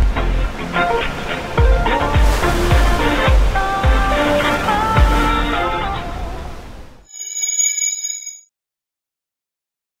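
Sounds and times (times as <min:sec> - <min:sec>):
bell-like chime: 0:07.1 - 0:08.5.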